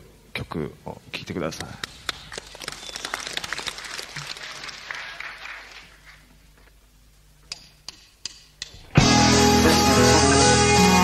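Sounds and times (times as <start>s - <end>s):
audience applauding: 1.8s - 6.3s.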